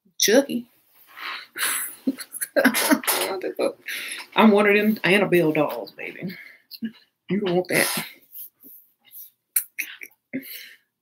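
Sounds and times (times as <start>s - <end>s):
woman laughing softly: 1.6s - 3.3s.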